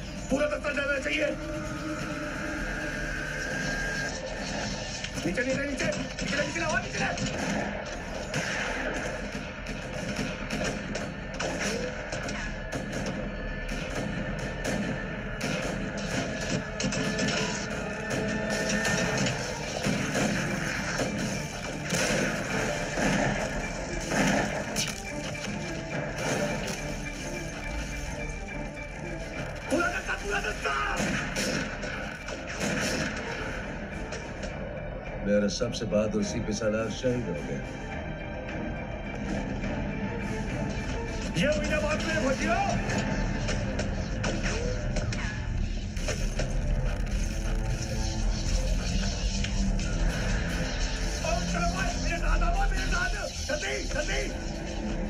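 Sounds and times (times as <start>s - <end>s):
background film music: 0.0s - 55.0s.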